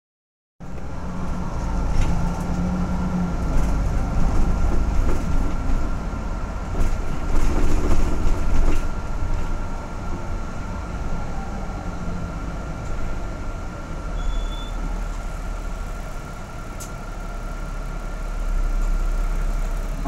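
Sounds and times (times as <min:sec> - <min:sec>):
bus engine and road rumble: 0:00.6 - 0:20.0.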